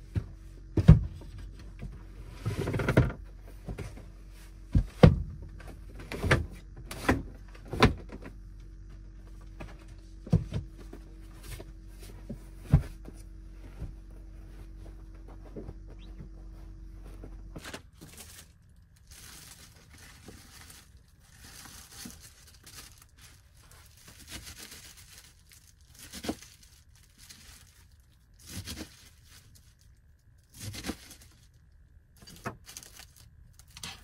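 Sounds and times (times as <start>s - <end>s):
soft bumps: 0.0s - 18.4s
low hum: 0.0s - 34.0s.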